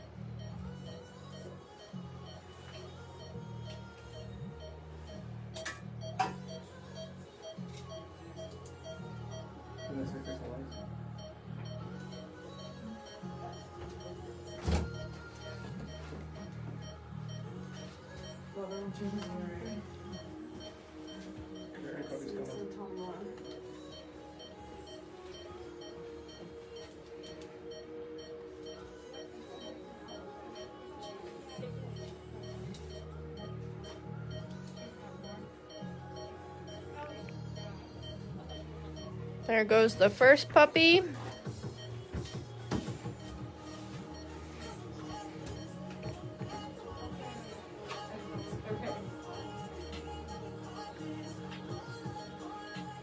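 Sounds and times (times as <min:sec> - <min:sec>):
background music: 0:00.0 - 0:53.0
monitor beeping: 0:00.0 - 0:53.0.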